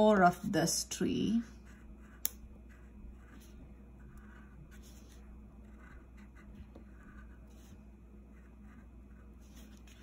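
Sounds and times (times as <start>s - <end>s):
crayon scratching on paper: 1.5s - 10.0s.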